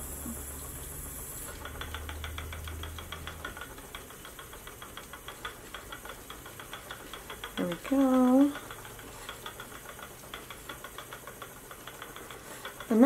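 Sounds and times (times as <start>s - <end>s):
spinning wheel clicking: 0.0s - 13.0s.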